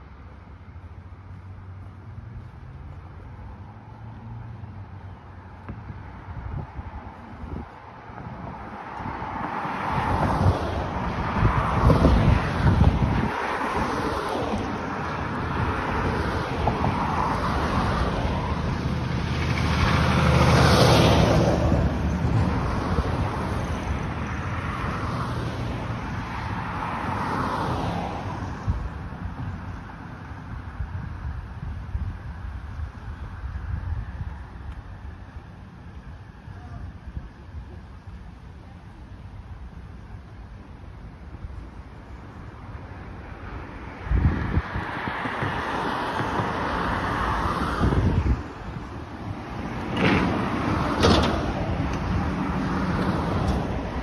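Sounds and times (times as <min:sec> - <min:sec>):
road traffic passing: 0:00.0 - 0:54.0.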